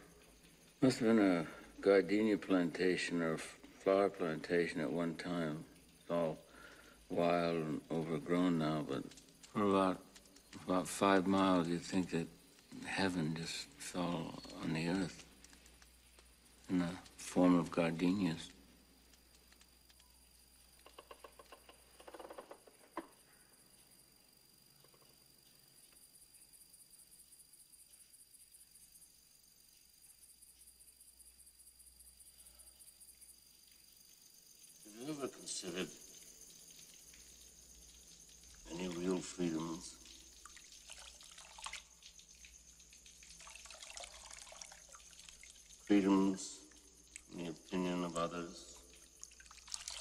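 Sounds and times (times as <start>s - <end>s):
night insects chirring: 0.0s - 50.0s
water dripping: 0.0s - 50.0s
water scooped by hand: 40.4s - 42.1s, 43.2s - 45.9s, 48.8s - 50.0s.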